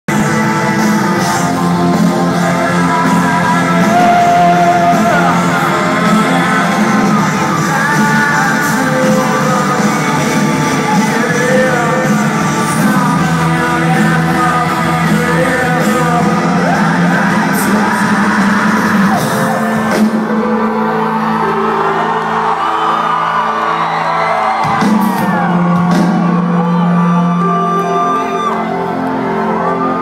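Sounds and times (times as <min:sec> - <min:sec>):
person singing: 0:00.1 - 0:22.9
crowd whooping and shouting: 0:00.1 - 0:30.0
rock band playing loudly: 0:00.1 - 0:30.0.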